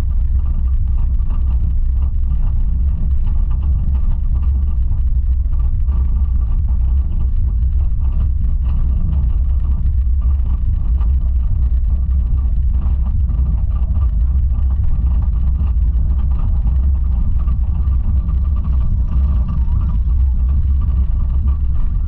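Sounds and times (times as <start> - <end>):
faint steady whine: 0.0 - 22.0
roller coaster lift hill rumble: 0.0 - 22.0.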